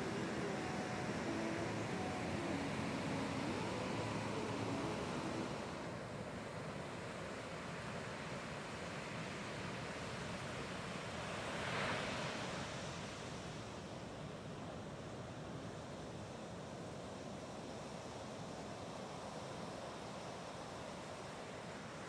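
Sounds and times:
ocean waves breaking: 0.0s - 6.6s.

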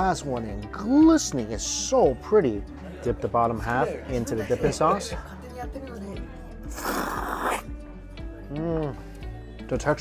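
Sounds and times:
background music: 0.0s - 10.0s
person slurping noodles: 6.7s - 7.7s.

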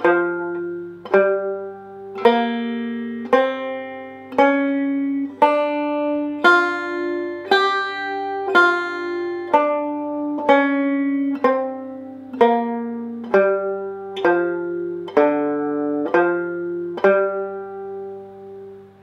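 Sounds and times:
banjo picking single notes: 0.0s - 19.0s.

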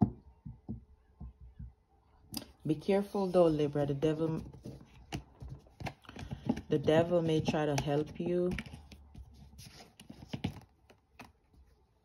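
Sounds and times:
cards clicking and tapping: 4.3s - 11.4s.

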